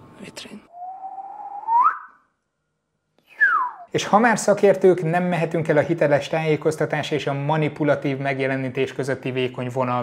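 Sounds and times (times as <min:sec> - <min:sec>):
falling whistle-like tone: 0:00.7 - 0:02.3, 0:03.3 - 0:03.9
rising whistle-like tone: 0:00.7 - 0:02.3, 0:03.3 - 0:03.9.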